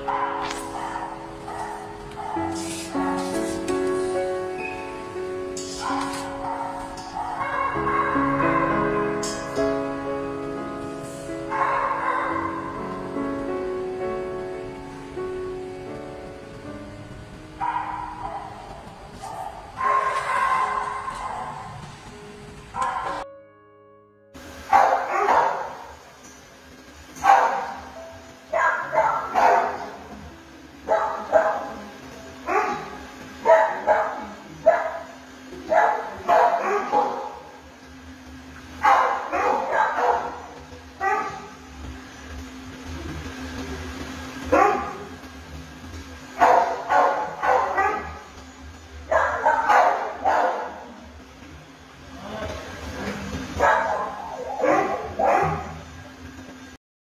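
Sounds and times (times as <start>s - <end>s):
dogs barking: 0.0s - 4.2s, 5.0s - 9.9s, 11.3s - 13.2s, 17.5s - 23.3s, 24.6s - 26.0s, 27.2s - 30.2s, 30.8s - 37.7s, 38.6s - 41.7s, 44.4s - 45.2s, 46.1s - 48.4s, 49.0s - 51.2s, 53.0s - 56.2s.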